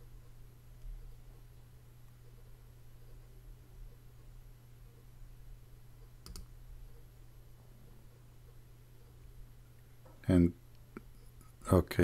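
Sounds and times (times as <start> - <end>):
faint low hum: 0.0 - 12.0
computer mouse double click: 6.2 - 6.5.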